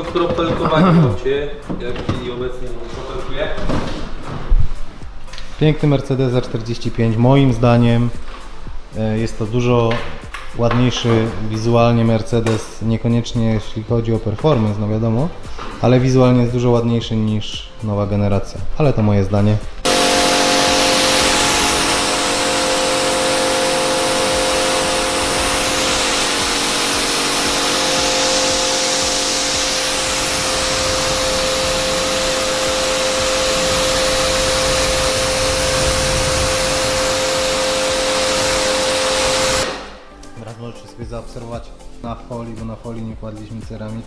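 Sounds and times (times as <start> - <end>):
pressure washer motor hum: 19.8 - 40.1
water jet hissing: 19.9 - 40.1.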